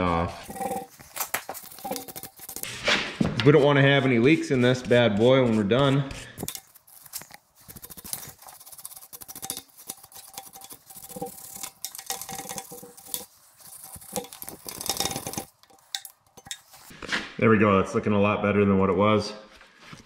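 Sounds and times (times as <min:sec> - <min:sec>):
wire brush scrubbing metal: 0:00.0 - 0:16.9.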